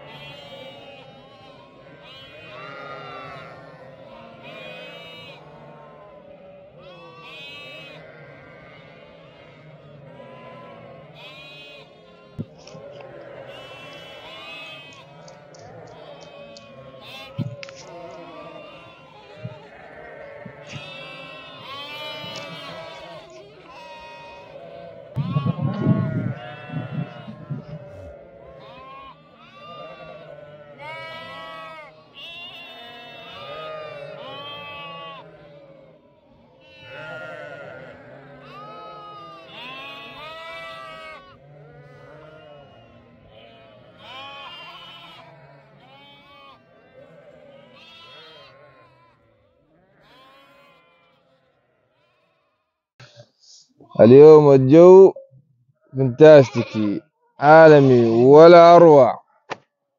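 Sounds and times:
sheep and lambs bleating: 0.0 - 52.7, 55.8 - 59.4.

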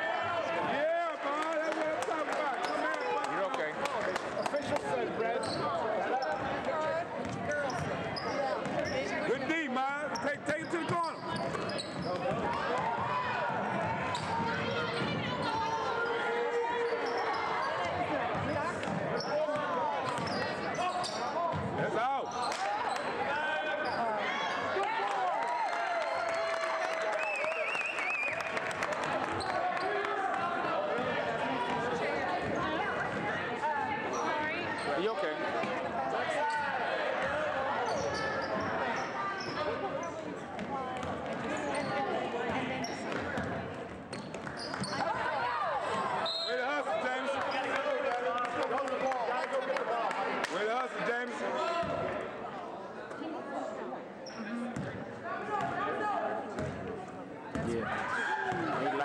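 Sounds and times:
spectators' voices and shouts: 0.0 - 59.0.

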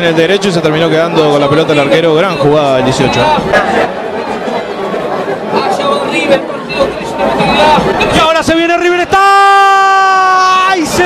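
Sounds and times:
crowd chatter and calls: 0.0 - 11.0.

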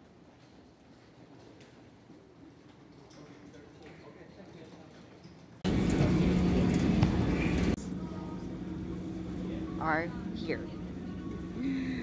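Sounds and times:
baggage conveyor humming and clattering: 0.0 - 12.0.

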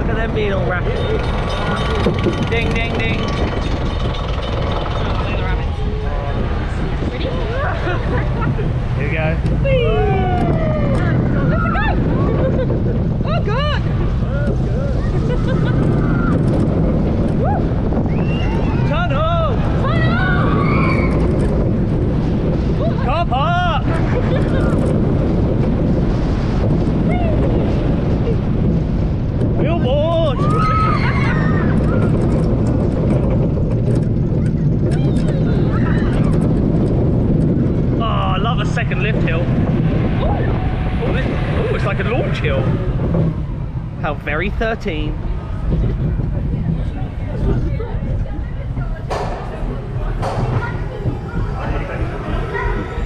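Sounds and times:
roller coaster wheels rumbling: 0.0 - 53.0
wind rushing over microphone: 0.0 - 53.0.

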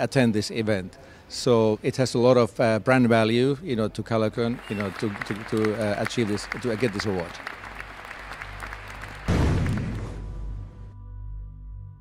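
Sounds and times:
audience applauding: 4.4 - 10.1
closing music: 7.6 - 12.0
loud booming hit: 9.3 - 10.8.

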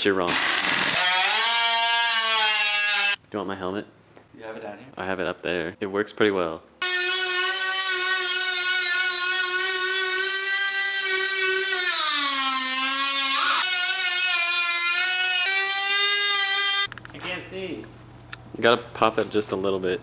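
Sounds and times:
air tool high whine: 0.3 - 3.2, 6.8 - 16.9.

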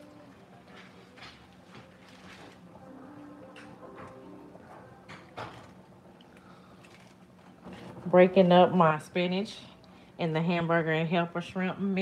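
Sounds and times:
faint crackles and clicks: 3.4 - 8.0.

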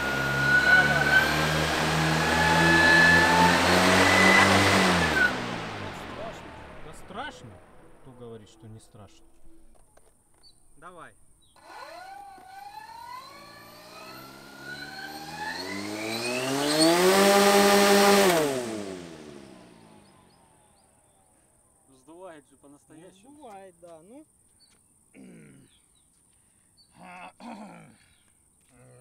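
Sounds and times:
electric motor whine: 0.0 - 7.2, 11.5 - 20.9
propeller wash rushing: 0.0 - 8.3, 11.6 - 20.0.

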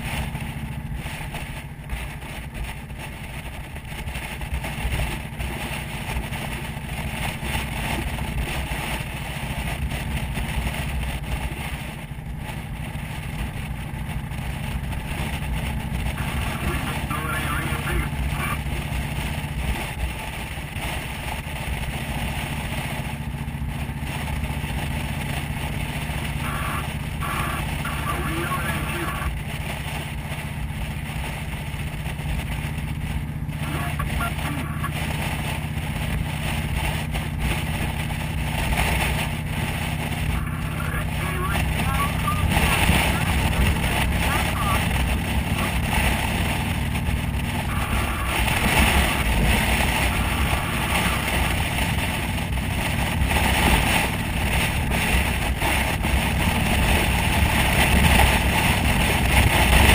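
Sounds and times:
motorcycle engine running: 0.0 - 59.9
wind noise: 0.0 - 59.9.

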